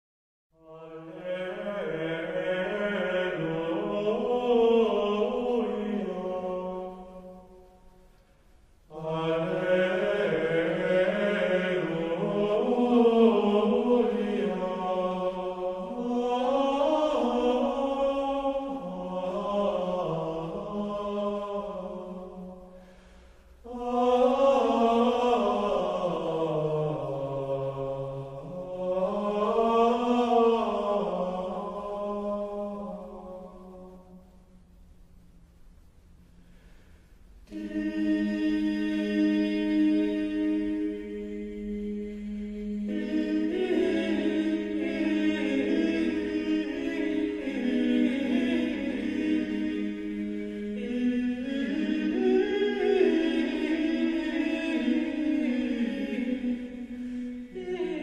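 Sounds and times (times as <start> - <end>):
slow vocal chant: 0.5 - 35.5, 36.1 - 58.0.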